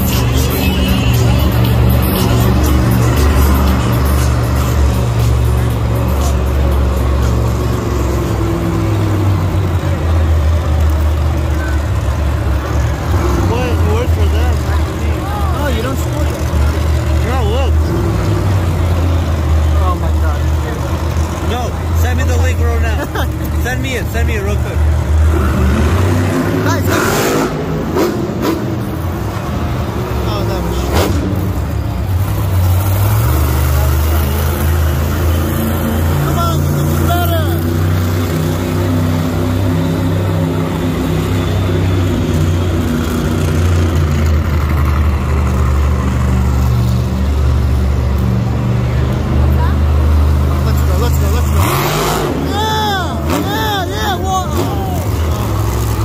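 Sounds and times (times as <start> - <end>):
arena public address sound: 0.0 - 27.5, 29.2 - 31.4, 44.8 - 56.0
monster truck engines rumbling: 0.0 - 56.0
voices: 0.0 - 56.0.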